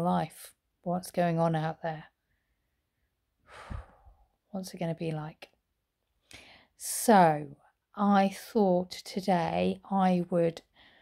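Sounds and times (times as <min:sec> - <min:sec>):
woman speaking: 0:00.0 - 0:02.1, 0:04.6 - 0:05.5, 0:06.8 - 0:10.6
woman sighing breath: 0:03.4 - 0:04.3.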